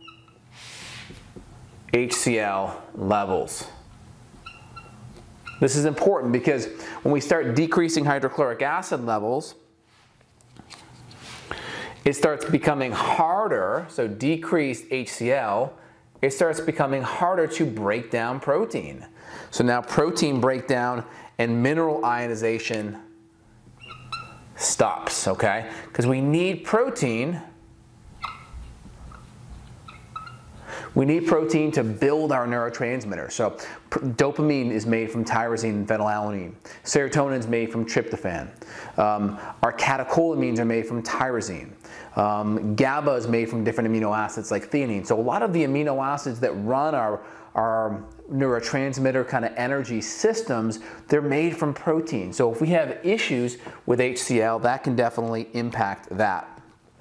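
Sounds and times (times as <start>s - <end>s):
marker squeaking on whiteboard: 0.0s - 0.5s, 4.4s - 5.8s, 23.8s - 24.6s, 28.1s - 30.6s.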